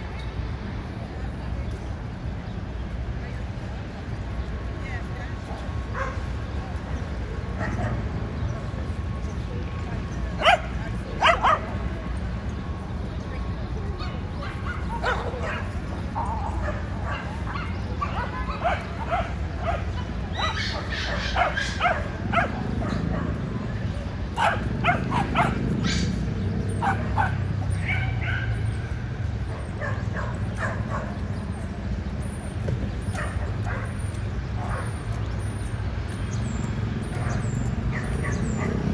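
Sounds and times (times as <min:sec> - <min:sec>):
city traffic rumble: 0:00.0 - 0:38.9
small dogs barking and yipping: 0:05.4 - 0:12.6, 0:13.4 - 0:38.9.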